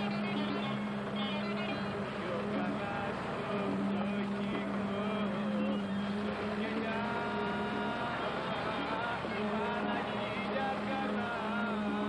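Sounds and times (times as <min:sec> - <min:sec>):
machinery motor hum: 0:00.0 - 0:12.0.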